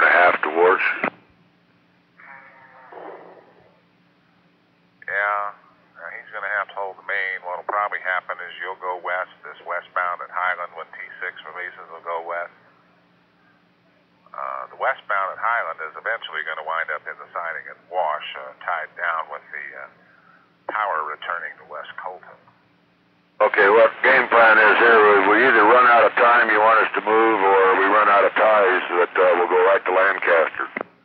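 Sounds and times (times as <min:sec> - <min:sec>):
radio noise burst: 0:00.0 - 0:01.2, 0:23.4 - 0:30.9
voice over two-way radio: 0:00.0 - 0:01.2, 0:05.1 - 0:12.5, 0:14.4 - 0:19.9, 0:20.7 - 0:22.4, 0:23.4 - 0:30.9
steady low hum: 0:00.0 - 0:31.0.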